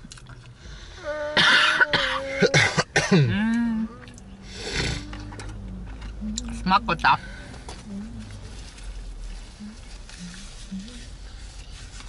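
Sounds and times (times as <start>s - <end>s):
person coughing: 1.4s - 3.4s.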